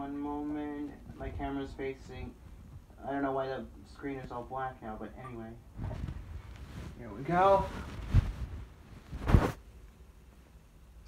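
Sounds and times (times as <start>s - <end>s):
rustle against microphone: 5.7s - 9.7s.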